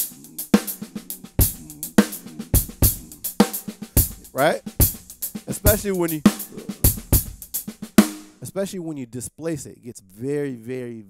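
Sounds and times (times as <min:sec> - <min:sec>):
bass drum strokes: 0:00.0 - 0:08.4
snare and hi-hat strokes: 0:00.0 - 0:08.4.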